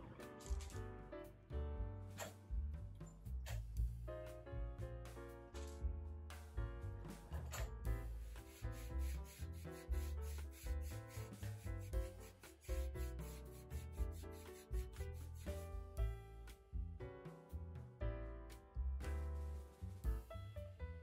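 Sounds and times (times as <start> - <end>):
background music: 0.0 - 21.0
sandpaper rubbing on wood: 8.2 - 15.7.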